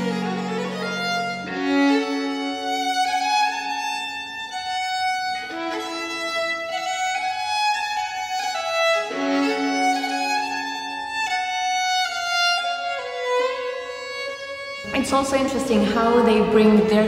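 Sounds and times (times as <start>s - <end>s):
violin holding long notes: 0.0s - 17.0s.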